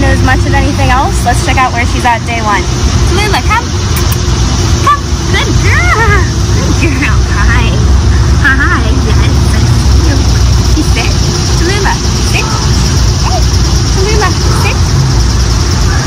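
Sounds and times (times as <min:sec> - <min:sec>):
high-pitched drone: 0:00.0 - 0:16.0
low rumble: 0:00.0 - 0:16.0.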